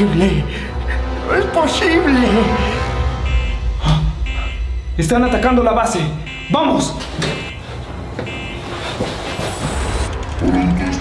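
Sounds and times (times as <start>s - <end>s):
short electronic tones: 6.2s - 7.6s.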